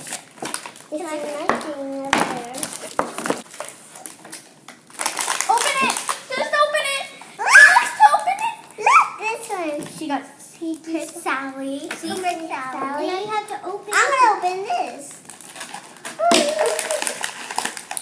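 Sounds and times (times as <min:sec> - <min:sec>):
wrappers crinkling and tearing: 0:00.0 - 0:06.7, 0:14.9 - 0:18.0
girls' excited voices and squeals: 0:05.6 - 0:09.5.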